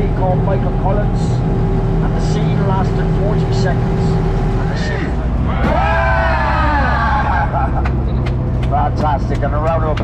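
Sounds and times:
bus engine running: 0.0s - 10.0s
voices: 2.0s - 10.0s.

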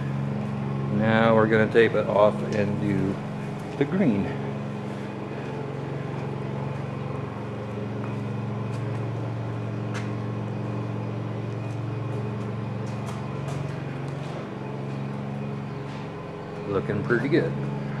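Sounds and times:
electric fans humming: 0.0s - 18.0s.

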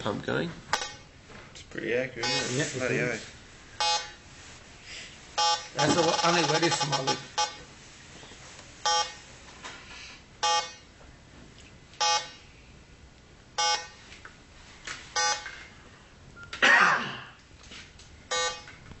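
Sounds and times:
leak detector beeping slowly: 2.2s - 2.5s, 3.8s - 4.2s, 5.4s - 7.6s, 8.8s - 9.2s, 10.4s - 10.9s, 12.0s - 12.4s, 13.6s - 14.0s, 15.2s - 15.5s, 18.3s - 18.8s.

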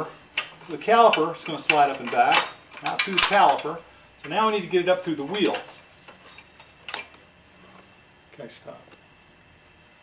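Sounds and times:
metal axle clicking: 0.0s - 4.4s.

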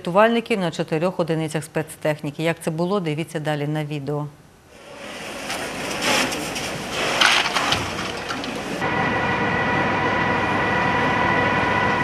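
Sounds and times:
high mechanical whine: 8.6s - 12.0s.

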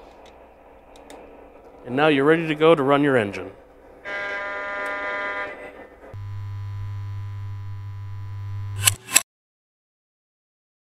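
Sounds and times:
train horn blasts: 4.0s - 5.8s.

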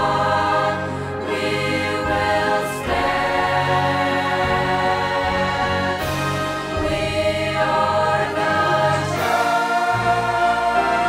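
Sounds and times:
choir singing worship song: 0.0s - 11.0s
deep bass notes: 0.0s - 11.0s
instrumental backing: 0.0s - 11.0s.

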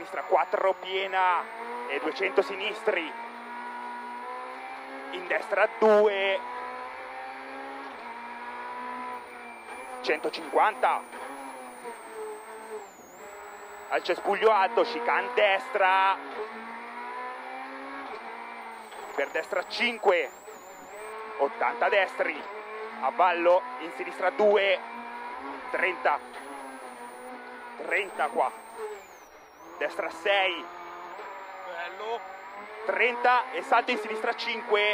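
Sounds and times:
faint high whine: 0.0s - 2.7s, 9.1s - 16.2s, 18.2s - 21.2s, 25.5s - 34.8s
rally car engine from inside cabin: 0.0s - 34.9s.

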